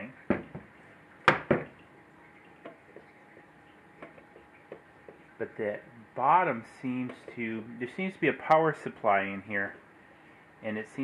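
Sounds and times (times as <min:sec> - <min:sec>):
sharp knocks on metal case: 0:00.3 - 0:00.7.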